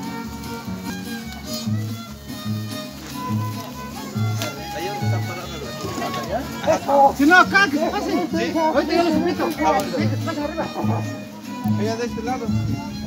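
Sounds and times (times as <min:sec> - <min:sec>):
folk dance music with violin: 0:00.0 - 0:13.0.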